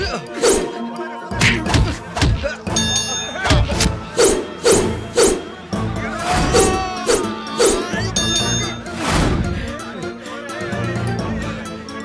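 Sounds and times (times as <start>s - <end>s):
action film music: 0.0s - 12.0s.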